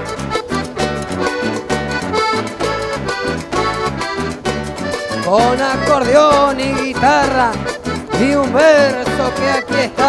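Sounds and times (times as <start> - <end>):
accordion melody: 0.0 - 10.0
steady bass beat: 0.0 - 10.0.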